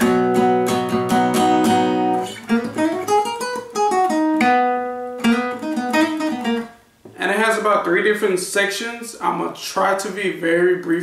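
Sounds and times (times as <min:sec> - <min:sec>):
acoustic guitar playing: 0:00.0 - 0:08.3.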